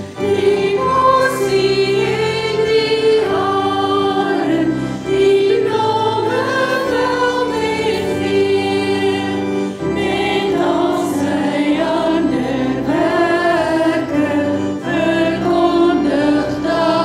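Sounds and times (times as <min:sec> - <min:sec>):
women singing worship song: 0:00.2 - 0:17.0.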